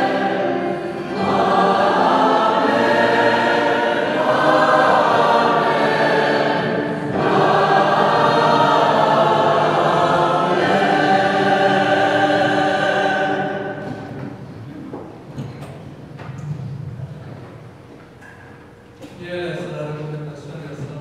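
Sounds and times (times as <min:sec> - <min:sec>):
choir singing: 0:00.0 - 0:14.4.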